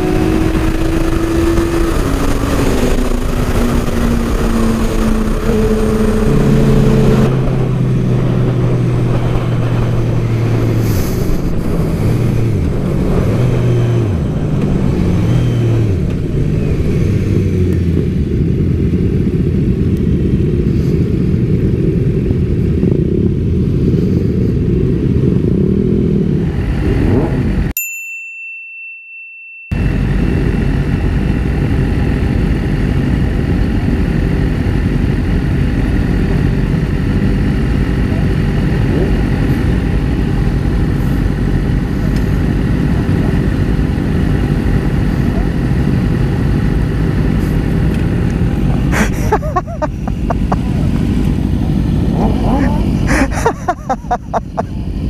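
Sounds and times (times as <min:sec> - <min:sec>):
motorcycle engines idling: 0:00.0 - 0:19.9, 0:36.9 - 0:55.0
wind rumble on microphone: 0:00.0 - 0:27.7, 0:29.8 - 0:55.0
motorcycle riding: 0:00.0 - 0:27.8, 0:29.7 - 0:55.0
steady high beep: 0:05.7 - 0:08.1.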